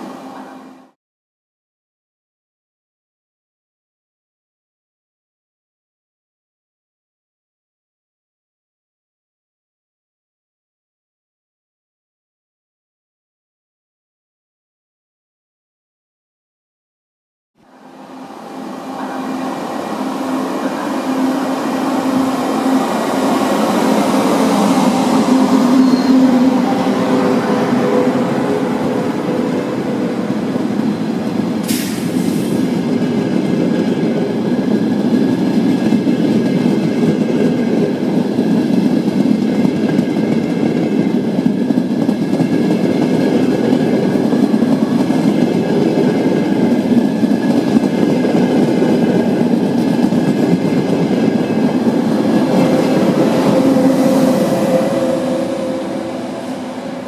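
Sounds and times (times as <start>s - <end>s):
electric train whine: 0.0s - 1.0s, 17.6s - 57.0s
train carriages rumbling over rails: 17.7s - 57.0s
brief high squeak: 25.5s - 26.6s.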